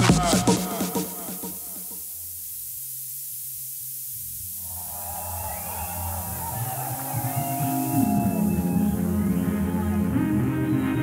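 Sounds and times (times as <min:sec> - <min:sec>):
techno beat: 0:00.0 - 0:02.4, 0:04.5 - 0:10.6
white noise hiss: 0:00.0 - 0:11.0
synth tones: 0:00.7 - 0:11.0.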